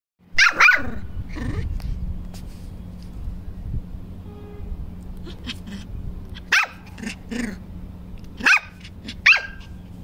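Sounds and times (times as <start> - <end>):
puppy barking: 0.4 - 1.0, 5.3 - 7.5, 8.4 - 9.8.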